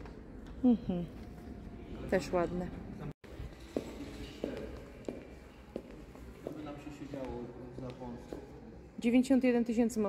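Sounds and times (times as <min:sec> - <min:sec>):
footsteps on tiled floor: 0:03.2 - 0:08.5.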